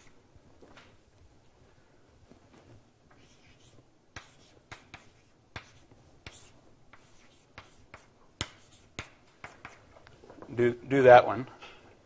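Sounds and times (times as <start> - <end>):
writing taps and scratches on board: 3.2 - 10.1.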